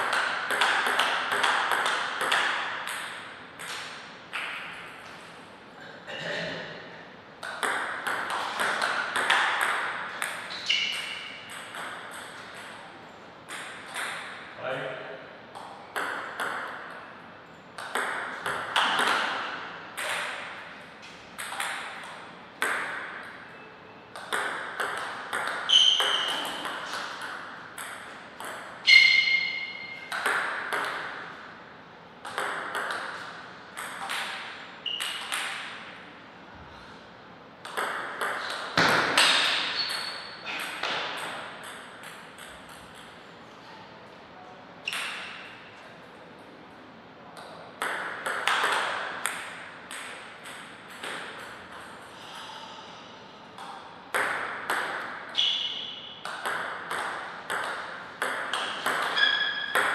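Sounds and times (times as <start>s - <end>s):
table tennis ball clicking: 29.2s - 31.1s.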